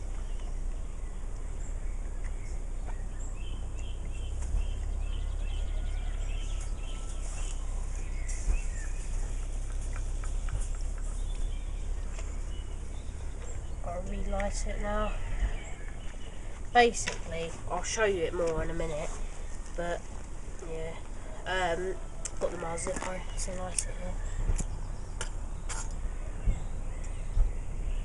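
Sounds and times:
birds chirping: 0.0 - 28.0
low wind rumble on microphone: 0.0 - 28.0.

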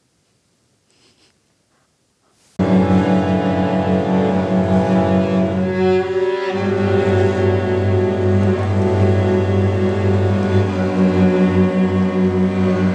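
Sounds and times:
orchestral string music: 2.6 - 12.9.

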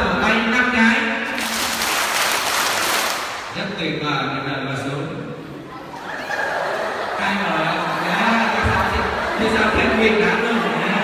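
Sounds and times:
crowd clapping in a large hall: 1.3 - 3.6.

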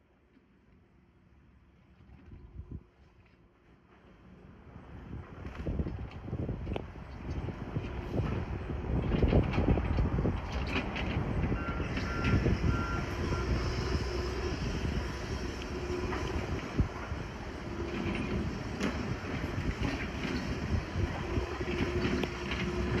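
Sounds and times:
excavator engine and hydraulics: 0.0 - 23.0.

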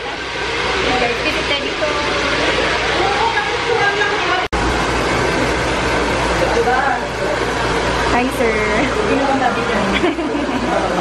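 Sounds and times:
hair dryer blowing: 0.0 - 11.0
faint voices: 6.2 - 11.0.

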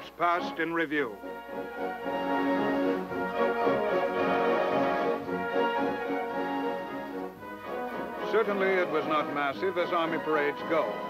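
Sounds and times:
military marching band playing: 0.0 - 11.0.

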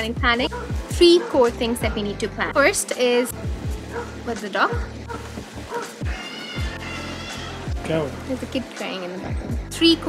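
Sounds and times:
music with bass beat: 0.0 - 8.6, 9.2 - 10.0
child crying: 6.0 - 7.7.

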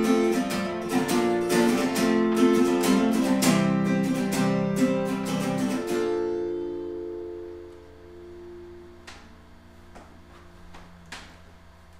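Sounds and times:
acoustic guitar chord ringing: 0.0 - 11.6.

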